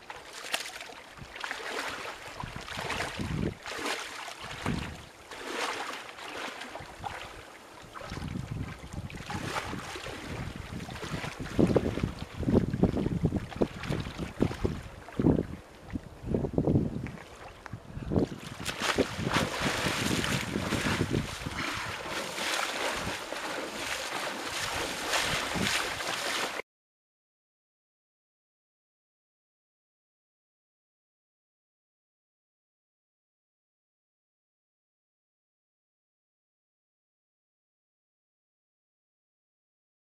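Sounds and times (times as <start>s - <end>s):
water sloshing and splashing: 0.0s - 16.1s, 17.0s - 26.6s
wind buffeting microphone: 2.4s - 3.7s, 4.4s - 5.1s, 7.8s - 26.6s.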